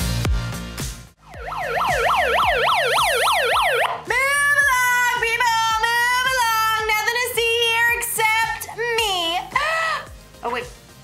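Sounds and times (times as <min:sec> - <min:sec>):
electronic yelp siren: 0:01.2 - 0:04.1.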